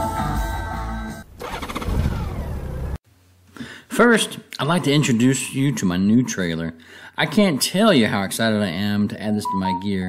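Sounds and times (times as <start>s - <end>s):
engine starting and running: 1.2s - 3.0s.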